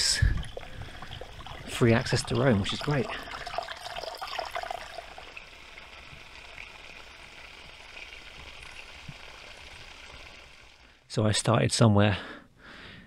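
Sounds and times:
water trickling down a bank: 0:00.0 - 0:11.0.

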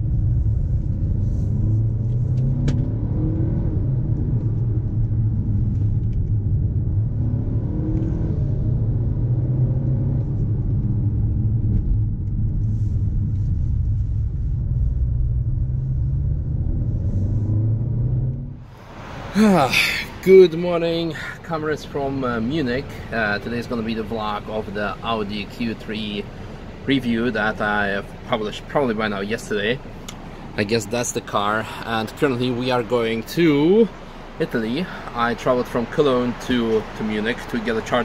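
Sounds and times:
car engine: 0:00.0 - 0:38.0
road rumble: 0:00.0 - 0:38.0.

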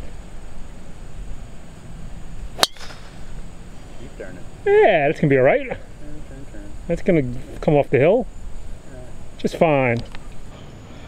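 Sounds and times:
golf club striking ball: 0:02.6 - 0:03.4.

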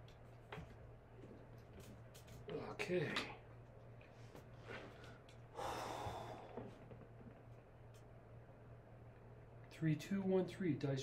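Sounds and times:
low steady hum: 0:00.0 - 0:11.0
person breathing out: 0:05.0 - 0:06.8.

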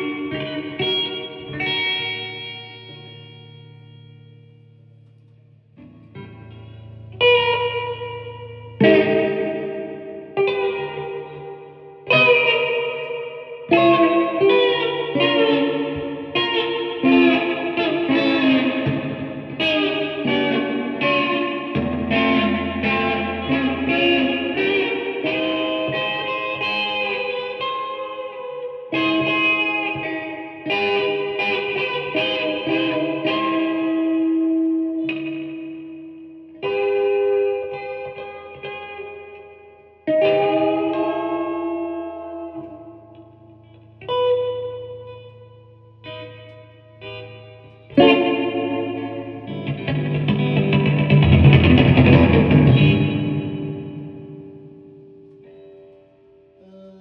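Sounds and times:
solo electric guitar: 0:00.0 - 0:57.0.

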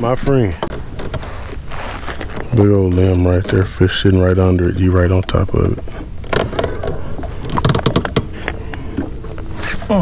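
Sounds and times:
low steady hum: 0:00.0 - 0:10.0
fishing tackle clicks and knocks: 0:04.4 - 0:09.8.

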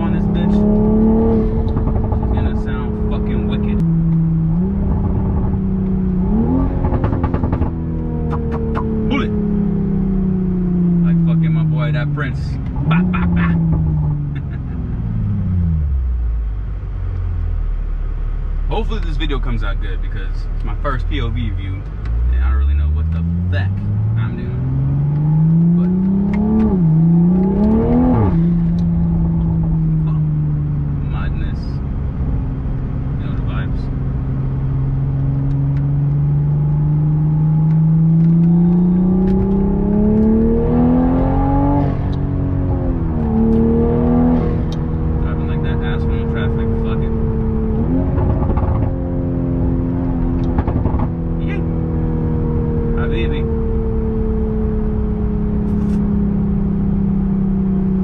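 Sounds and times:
turbocharged car engine accelerating: 0:00.0 - 0:17.7, 0:18.7 - 0:58.0.

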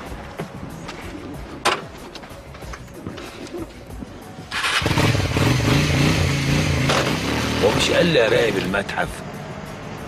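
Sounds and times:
motorcycle engine starting and revving: 0:04.5 - 0:08.8.

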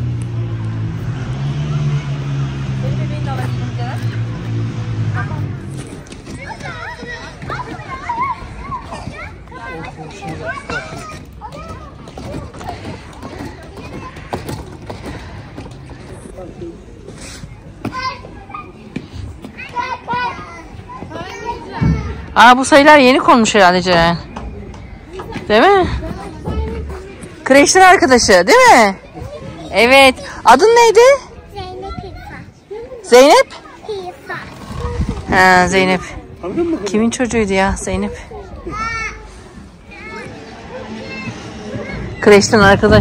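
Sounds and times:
vehicle engine humming: 0:00.0 - 0:08.1, 0:37.6 - 0:43.0
children calling and chattering: 0:00.0 - 0:43.0.

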